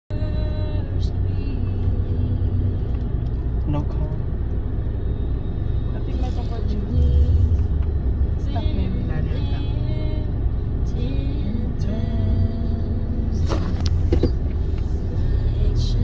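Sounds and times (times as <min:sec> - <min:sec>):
car engine and road noise: 0:00.1 - 0:16.0.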